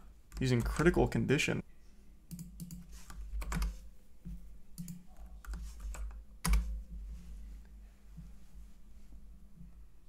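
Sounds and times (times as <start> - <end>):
typing on computer keyboard: 2.3 - 3.8, 4.8 - 6.8.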